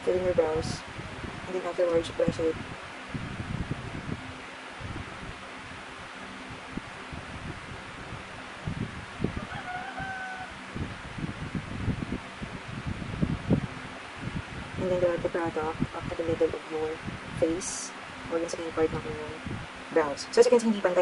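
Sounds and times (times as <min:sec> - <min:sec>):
rooster crowing: 0:09.3 - 0:10.7.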